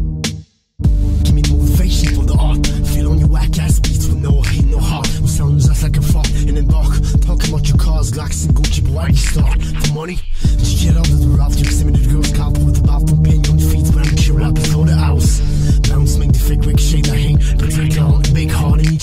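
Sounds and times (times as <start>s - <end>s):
drum hits: 0.0s - 9.7s
bass notes: 0.0s - 19.0s
rapping over a beat: 1.0s - 19.0s.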